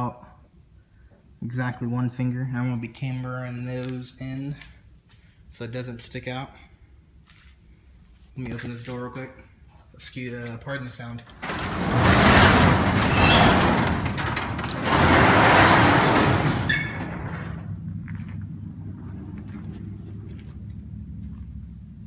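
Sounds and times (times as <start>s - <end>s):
garage door rattling: 11.2s - 20.1s.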